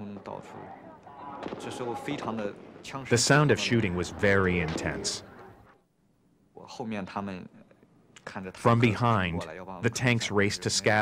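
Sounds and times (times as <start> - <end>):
man speaking: 1.0 - 5.3, 8.2 - 11.0.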